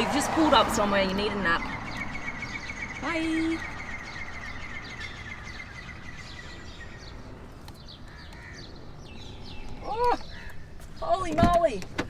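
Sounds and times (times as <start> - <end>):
small birds chirping: 0.0 - 12.0
high bird trill: 1.0 - 11.3.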